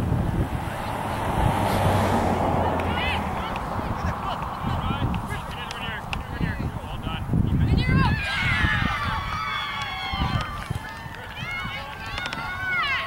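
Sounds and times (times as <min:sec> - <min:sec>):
wind rumbling on microphone: 0:00.0 - 0:13.0.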